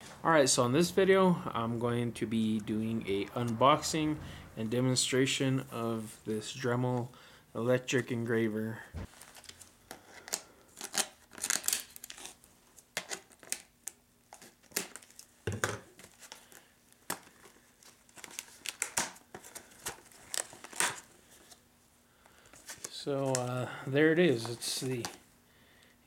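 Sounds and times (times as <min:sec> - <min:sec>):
plastic cracking and crinkling: 0:09.0 - 0:21.6, 0:22.4 - 0:23.6.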